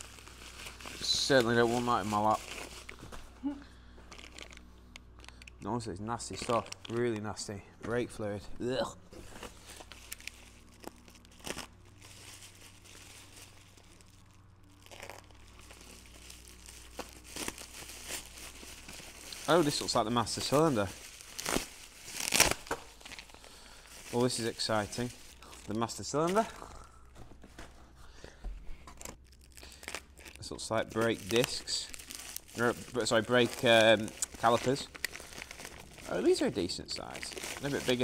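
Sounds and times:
plastic packaging rustling and tearing: 0.0 - 3.4, 4.1 - 7.4, 9.2 - 26.7, 28.9 - 38.0
bubble wrap crinkling: 0.0 - 7.4, 9.2 - 26.9, 28.9 - 38.0.

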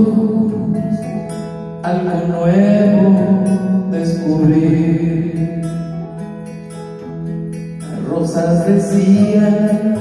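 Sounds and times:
backing music through small loudspeaker: 0.0 - 10.0.

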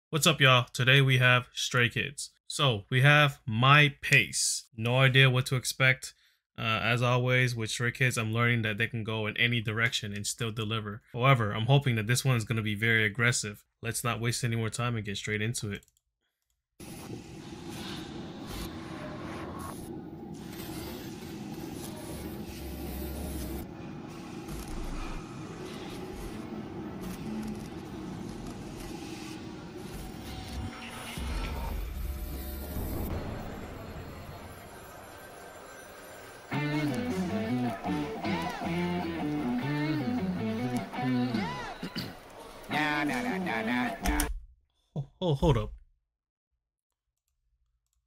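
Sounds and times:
low rumbles: 22.3 - 35.7
rock song with guitar: 36.5 - 41.6.

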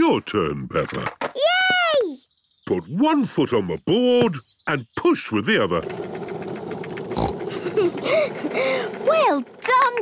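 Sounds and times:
child exclaiming delightedly: 1.4 - 2.2
skateboard wheels rumbling: 5.8 - 10.0.

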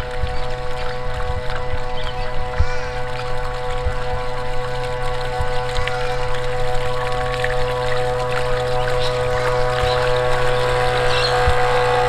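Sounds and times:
model boat motor whine: 0.0 - 12.0
water splashing off hull: 0.0 - 12.0.

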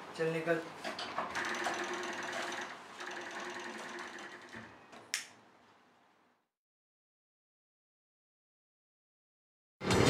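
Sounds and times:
mechanical whirring hum: 0.0 - 6.3.

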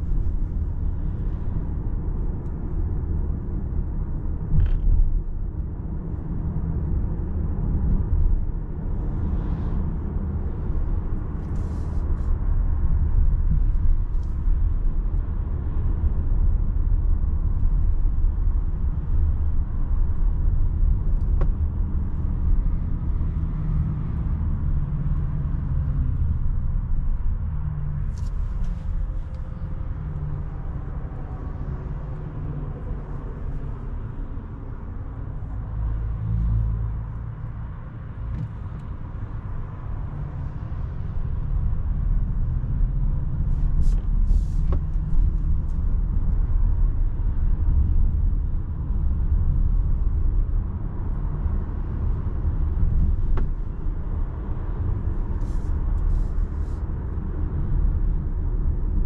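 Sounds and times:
road and tyre rumble: 0.0 - 59.0.

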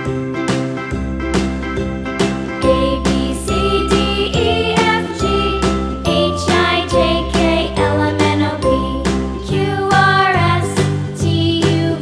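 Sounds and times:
children's music with bright melody: 0.0 - 12.0.

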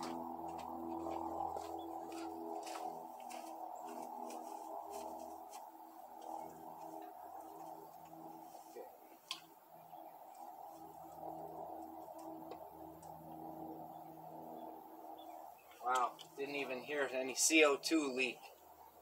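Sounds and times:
steady multi-tone hum: 0.0 - 19.0.

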